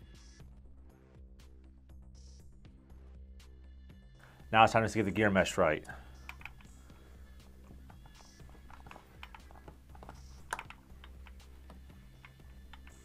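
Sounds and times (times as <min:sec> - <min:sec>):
faint background music: 0:00.0 - 0:13.0
motor gear clicks and taps: 0:06.2 - 0:06.7, 0:07.6 - 0:13.0.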